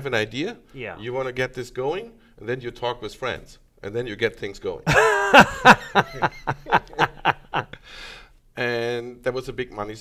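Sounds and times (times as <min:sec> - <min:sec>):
men laughing: 0:04.9 - 0:07.8
breathy exhale: 0:07.8 - 0:08.4.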